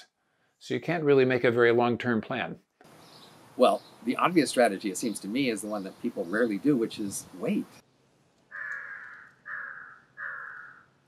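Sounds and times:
crow cawing: 8.5s - 11.0s.

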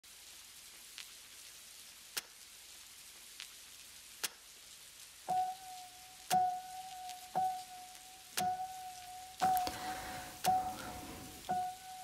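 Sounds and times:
faint rain hiss: 0.0s - 12.0s
water drips on hard surface: 0.2s - 12.0s.

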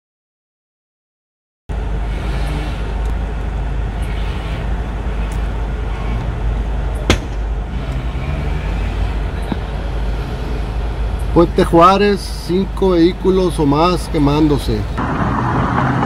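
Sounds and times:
street noise rumble with hiss: 1.7s - 16.0s
sharp crack: 7.0s - 7.5s.

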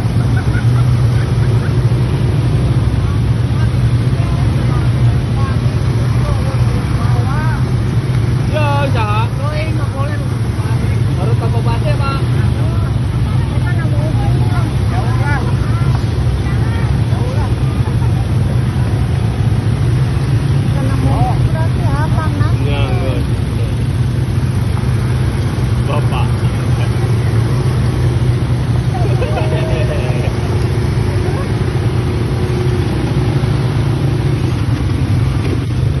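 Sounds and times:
quad bike engines droning: 0.0s - 36.0s
people calling out: 25.8s - 33.2s.

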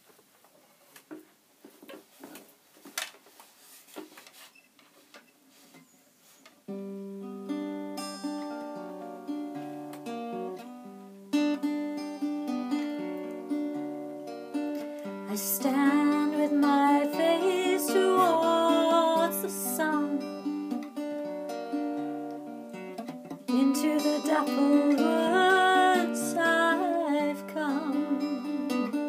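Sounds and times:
acoustic guitar chords: 6.7s - 29.0s.

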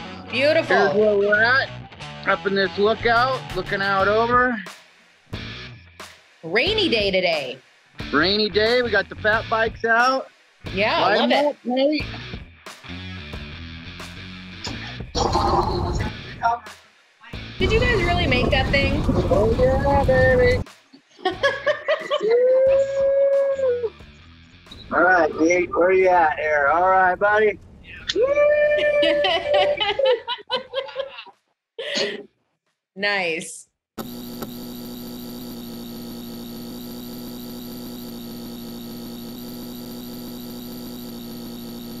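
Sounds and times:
man whooping: 22.1s - 24.0s, 28.0s - 30.2s.

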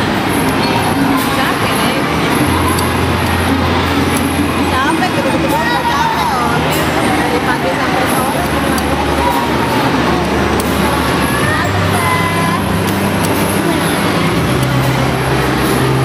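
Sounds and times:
crowd hubbub: 0.0s - 16.0s.

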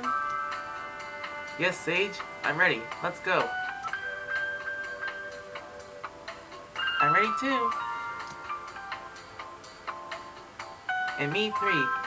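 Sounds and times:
soft elevator music: 0.0s - 12.0s.

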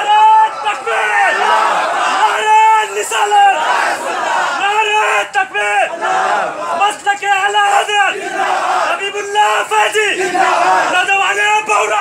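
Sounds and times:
crowd noise: 0.0s - 12.0s
men shouting slogans together: 0.0s - 12.0s.

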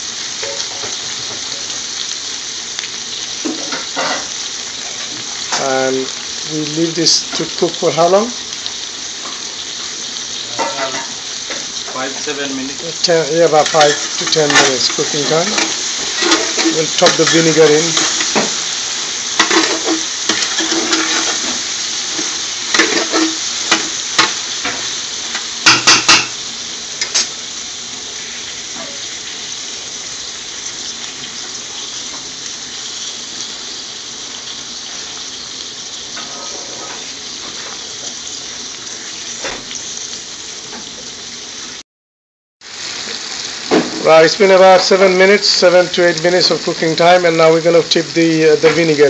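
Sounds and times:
peppers sizzling in oil: 0.0s - 41.8s, 42.6s - 49.0s
metal spoon scraping pot: 13.6s - 18.4s.

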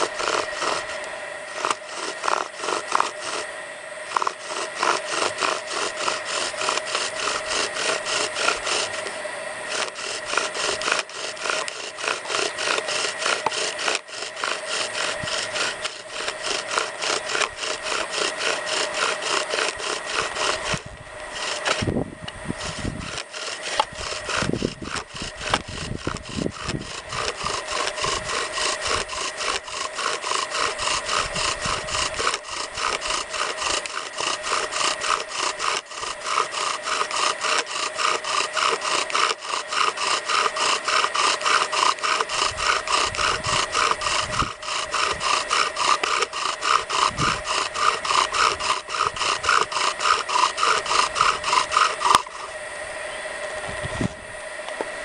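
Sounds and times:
bow drill spindle grinding on wood: 0.0s - 52.8s.

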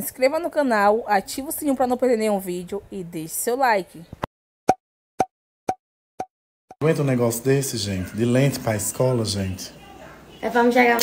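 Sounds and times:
woman speaking: 0.0s - 4.2s, 9.9s - 11.0s.

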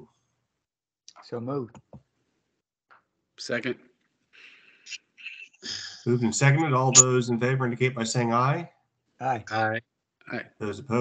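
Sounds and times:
speech: 1.1s - 1.8s, 3.4s - 3.8s, 5.2s - 11.0s.

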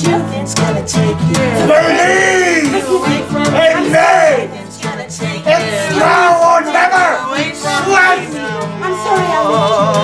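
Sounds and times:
acoustic guitar: 0.0s - 10.0s
people singing: 0.0s - 10.0s.

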